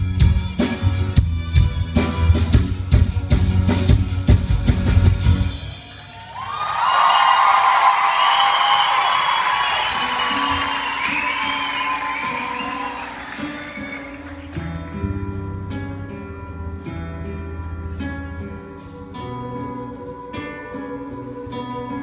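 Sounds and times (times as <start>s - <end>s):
live band song ending: 0.0s - 6.0s, 8.4s - 14.9s
audience applauding and cheering: 5.6s - 15.0s.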